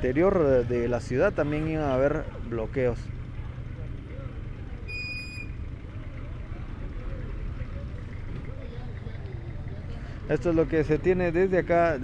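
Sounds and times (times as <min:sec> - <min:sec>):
faint voices: 0:00.0 - 0:04.9, 0:05.5 - 0:12.0
vehicle engines idling: 0:00.0 - 0:12.0
short high beep: 0:04.9 - 0:05.6.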